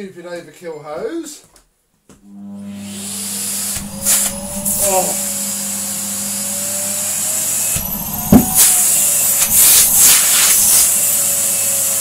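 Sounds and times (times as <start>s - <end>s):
vacuum cleaner hum and whine: 2.3s - 8.2s, 9.7s - 12.0s
hose sucked in with loud bang: 8.3s - 8.6s.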